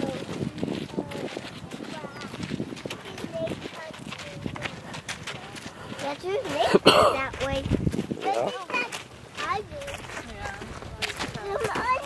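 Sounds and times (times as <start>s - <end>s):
children babbling and calling out: 0.0s - 5.1s, 6.0s - 10.2s, 11.3s - 12.0s
footsteps on dirt trail: 0.0s - 12.0s.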